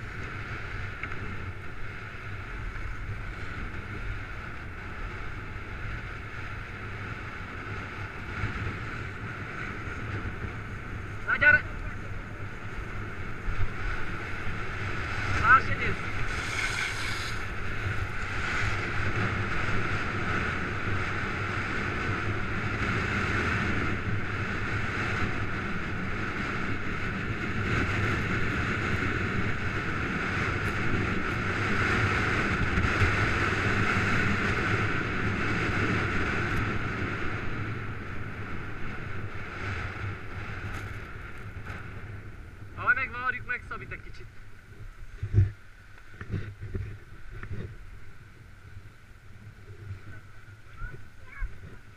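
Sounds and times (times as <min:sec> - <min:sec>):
skis scraping over packed snow: 0:00.0 - 0:42.4
wind on microphone: 0:00.0 - 0:42.8, 0:43.4 - 0:51.9.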